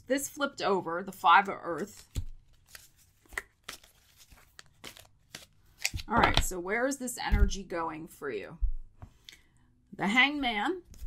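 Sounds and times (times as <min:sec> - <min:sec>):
cards being shuffled: 0:01.8 - 0:06.5.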